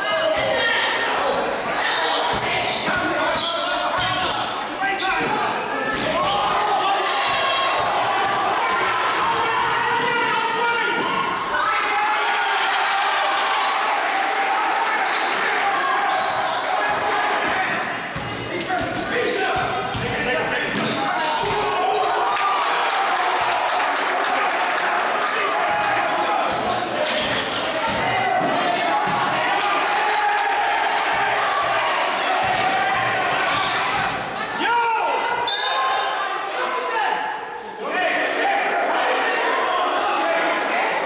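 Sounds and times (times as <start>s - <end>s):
basketball bouncing on gym floor: 18.1s - 19.0s, 19.6s - 21.6s.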